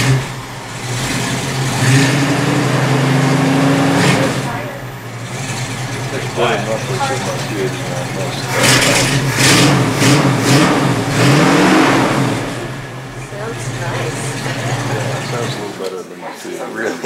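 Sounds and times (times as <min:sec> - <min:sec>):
car engine revving and idling: 0:00.0 - 0:15.9.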